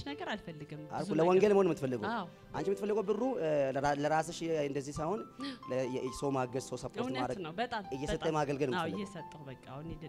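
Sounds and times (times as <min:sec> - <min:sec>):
man speaking into a microphone: 0:02.6 - 0:07.4.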